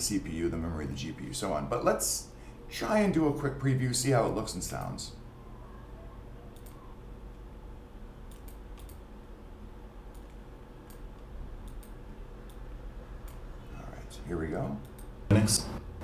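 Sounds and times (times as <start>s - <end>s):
low room hum: 0.0s - 16.0s
computer mouse clicks: 6.5s - 7.4s, 8.3s - 9.0s, 10.1s - 12.6s, 13.2s - 13.4s, 14.8s - 15.1s.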